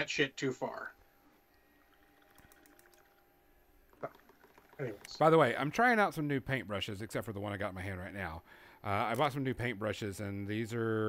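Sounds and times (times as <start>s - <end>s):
faint clicks: 2.2s - 3.2s.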